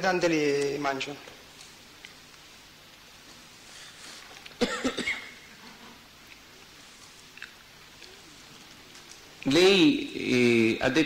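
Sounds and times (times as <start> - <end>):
person coughing: 4.6 - 5.4.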